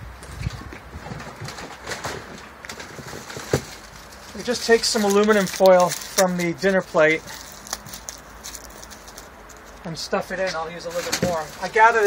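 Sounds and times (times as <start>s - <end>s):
aluminium foil crinkling: 2.7s - 12.0s.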